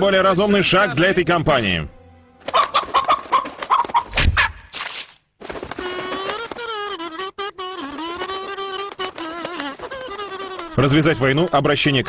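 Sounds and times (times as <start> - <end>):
chicken clucking: 2.4 - 4.1.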